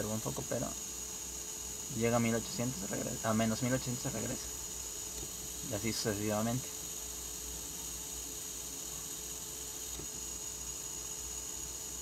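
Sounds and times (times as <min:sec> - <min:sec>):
small electric motor running: 0:00.0 - 0:12.0.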